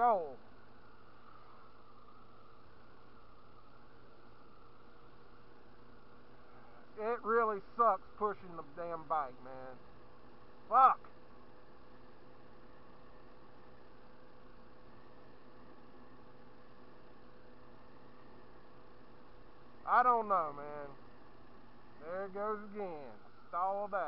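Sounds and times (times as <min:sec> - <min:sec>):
scooter engine humming: 0:00.0 - 0:07.0, 0:09.3 - 0:23.8.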